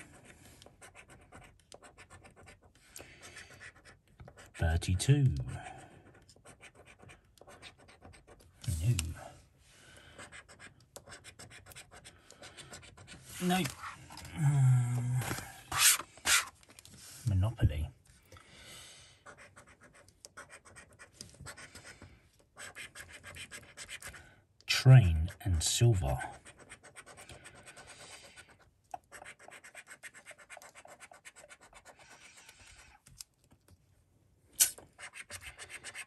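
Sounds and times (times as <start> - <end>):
card rustling: 13.0 - 17.2.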